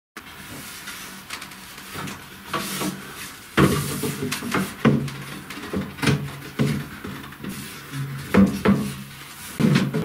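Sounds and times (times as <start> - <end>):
wooden rack parts knocking: 8.0 - 9.0, 9.6 - 10.0.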